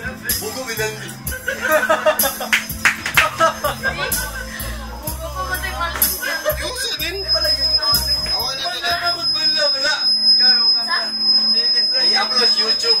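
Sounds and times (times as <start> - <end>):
men laughing and talking: 0.0 - 9.2
music with bass beat: 0.0 - 9.4
high-pitched tone: 3.4 - 13.0.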